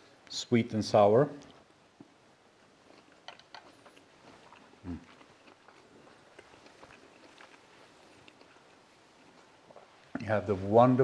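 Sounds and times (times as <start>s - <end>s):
person chewing food: 2.0s - 10.2s
closed-mouth approving hum: 3.0s - 10.4s.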